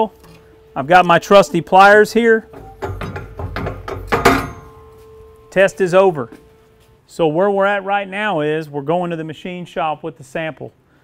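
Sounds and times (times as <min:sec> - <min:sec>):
metal clank: 0:02.4 - 0:05.5.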